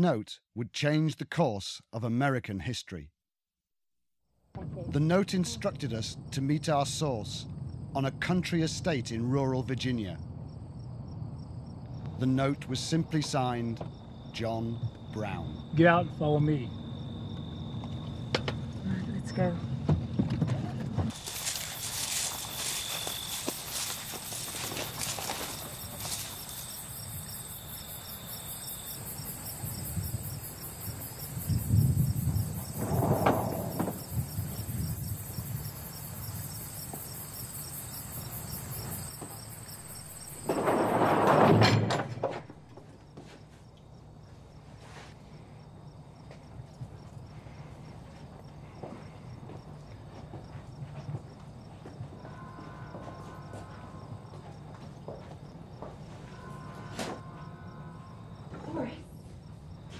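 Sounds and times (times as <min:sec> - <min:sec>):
background ambience: 0:04.7 - 0:41.4
crickets chirping: 0:04.8 - 0:59.9.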